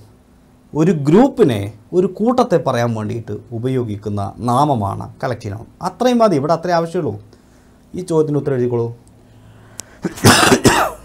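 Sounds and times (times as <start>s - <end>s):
man speaking: 0.7s - 7.3s, 7.9s - 9.0s
man coughing: 10.0s - 11.0s.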